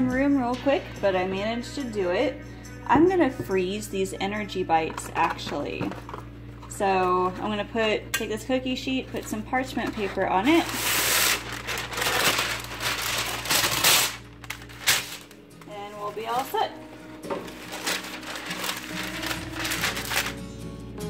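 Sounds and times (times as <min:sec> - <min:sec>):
quiet background music: 0:00.0 - 0:21.0
paper tearing and rustling: 0:10.5 - 0:15.4, 0:16.3 - 0:20.5.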